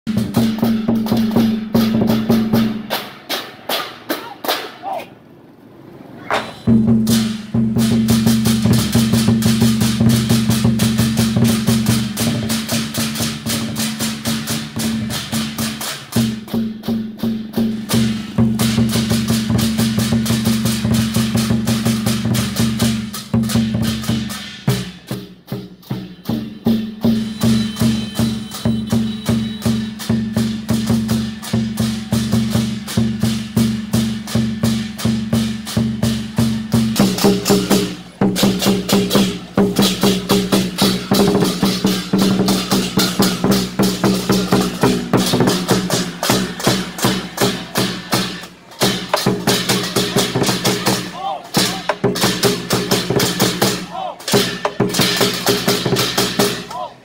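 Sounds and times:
large drums beating: 0.1s - 5.0s, 6.4s - 57.0s
handheld cymbals clashing: 6.3s - 56.7s.

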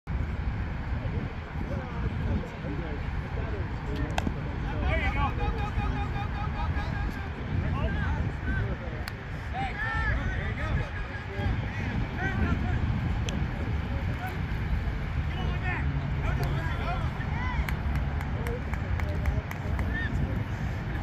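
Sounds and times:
wind rumbling on microphone: 0.1s - 21.0s
players shouting: 4.6s - 8.8s, 9.4s - 12.9s, 14.0s - 21.0s.

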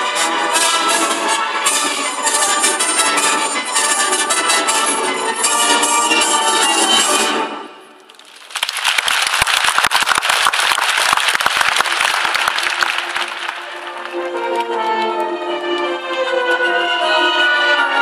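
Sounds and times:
orchestral music: 0.0s - 8.0s, 11.8s - 18.0s
audience applauding: 8.1s - 14.9s.

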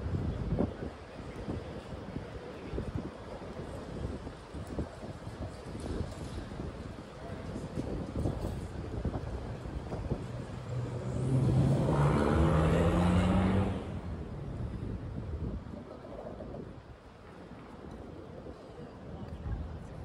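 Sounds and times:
street traffic: 0.0s - 20.0s
vehicle accelerating past: 10.6s - 14.2s.

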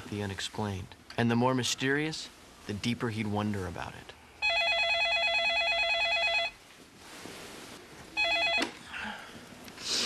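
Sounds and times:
electronic telephone ringer trilling: 4.4s - 6.6s, 8.2s - 8.8s.

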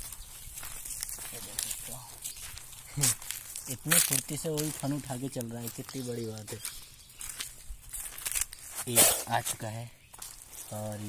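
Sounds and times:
dry leaves and twigs rustling: 0.0s - 11.0s
man speaking: 1.2s - 2.2s, 2.9s - 6.7s, 8.8s - 10.0s, 10.7s - 11.0s.

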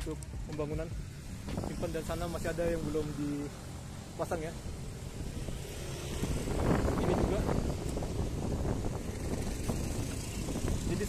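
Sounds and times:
road traffic noise: 0.0s - 11.0s
wind rumbling on microphone: 1.2s - 3.6s, 4.6s - 11.0s.

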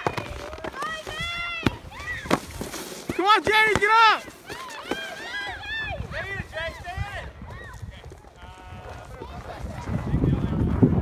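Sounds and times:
crowd cheering: 3.2s - 6.3s.

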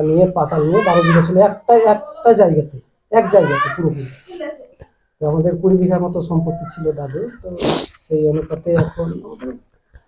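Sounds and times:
man speaking: 0.0s - 4.3s, 5.2s - 9.7s
short hissing burst: 7.6s - 8.0s.

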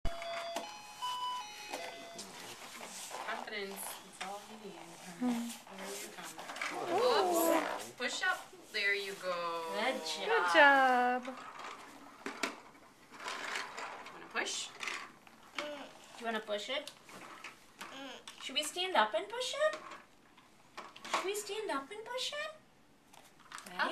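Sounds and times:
plastic balls rattling in push toy: 11.2s - 15.2s.

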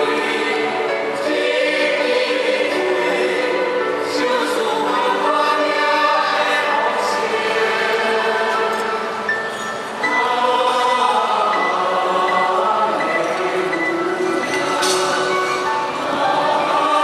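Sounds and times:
choir singing held chords: 0.0s - 17.0s.

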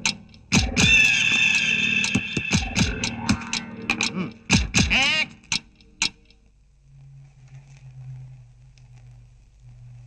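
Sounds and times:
sharp percussion hits: 0.5s - 5.0s.

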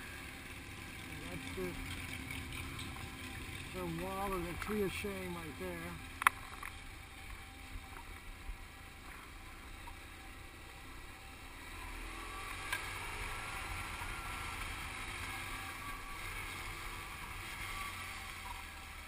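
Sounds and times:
motorcycle engine pulling away: 0.0s - 19.0s.

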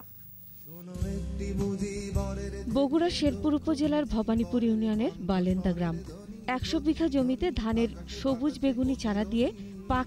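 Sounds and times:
steady low hum: 0.0s - 0.8s.

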